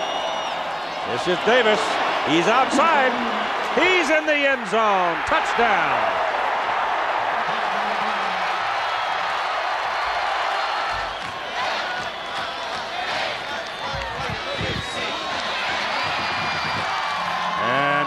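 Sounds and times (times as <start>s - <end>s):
stadium crowd cheering: 0.0s - 18.0s.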